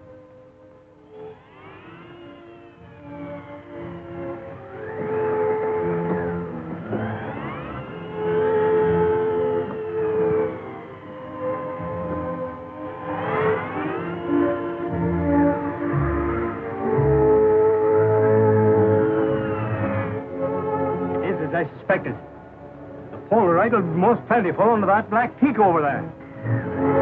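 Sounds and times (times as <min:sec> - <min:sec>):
film score music with held notes: 0:00.0 - 0:27.0
gliding tones rising and falling: 0:01.0 - 0:24.4.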